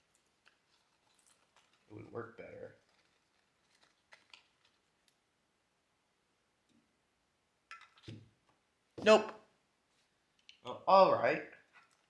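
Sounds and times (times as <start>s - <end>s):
paper clicks and rustles: 0.0s - 5.2s.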